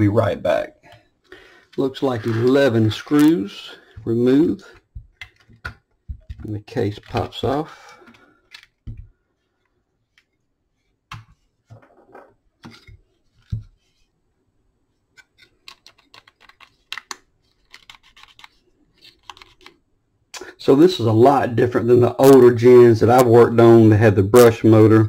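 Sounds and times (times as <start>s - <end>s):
plastic parts clicking and knocking: 4.8s - 9.2s, 15.2s - 19.8s.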